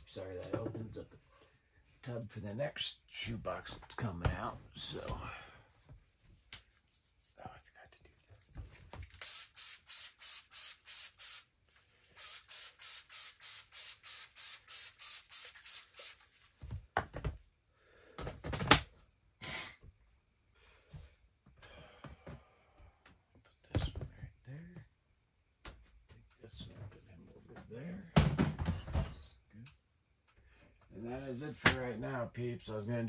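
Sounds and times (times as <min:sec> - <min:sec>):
spray bottle spraying: 0:09.0 - 0:11.5, 0:12.1 - 0:16.3.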